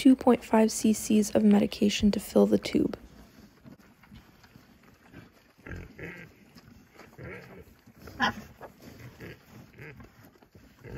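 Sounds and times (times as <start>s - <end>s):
pigs grunting: 4.1s - 10.9s.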